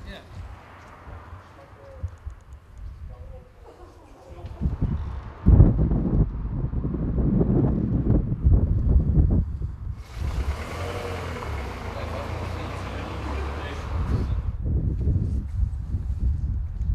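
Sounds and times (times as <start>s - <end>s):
indistinct voices: 10.1s - 14.5s.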